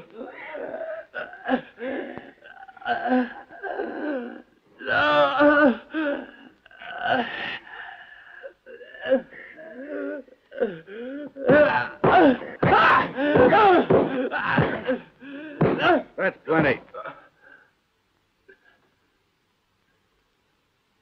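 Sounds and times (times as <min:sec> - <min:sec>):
man groaning in pain: 0:00.0 - 0:07.7, 0:08.4 - 0:16.2
gasping breaths: 0:05.8 - 0:16.0.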